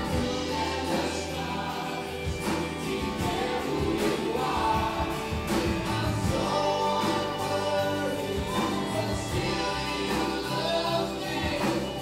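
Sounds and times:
drum and cymbal hits: 0.0s - 12.0s
guitars: 0.0s - 12.0s
keyboard: 0.0s - 12.0s
voices singing in harmony: 0.0s - 12.0s.

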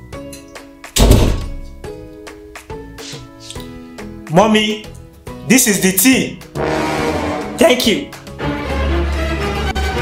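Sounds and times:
background music: 0.0s - 10.0s
door thudding shut: 1.0s - 1.8s.

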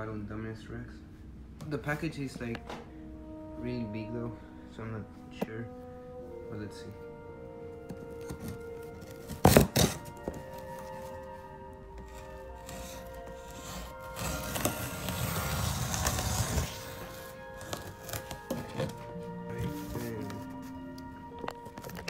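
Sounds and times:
background music: 0.0s - 22.0s
cardboard and tape rustling: 7.8s - 22.0s
blade cutting packing tape: 9.3s - 10.2s, 12.1s - 18.9s.

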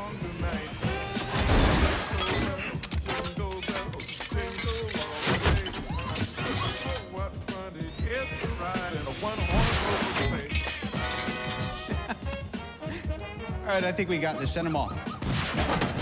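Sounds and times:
rising mechanical whine: 0.0s - 2.0s
music: 0.0s - 16.0s
armour pieces clanking: 1.2s - 7.1s, 9.9s - 11.4s.

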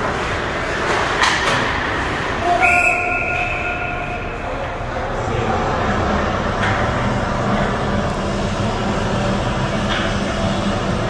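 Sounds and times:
ice rink rumbling hum: 0.0s - 11.0s.

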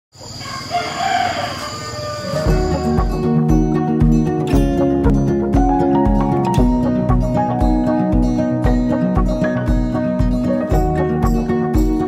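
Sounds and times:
rooster crowing: 0.3s - 3.0s.

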